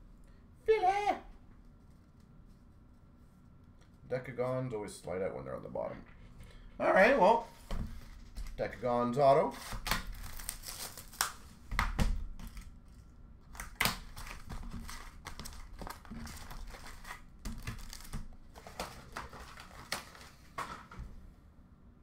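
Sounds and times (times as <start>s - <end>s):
plastic wrapping crinkling and tearing: 9.4s - 11.6s, 12.3s - 20.6s.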